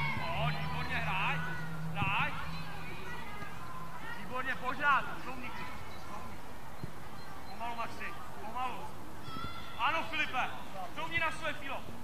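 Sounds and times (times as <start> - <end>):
children shouting during play: 0.0 - 4.6, 9.2 - 10.7.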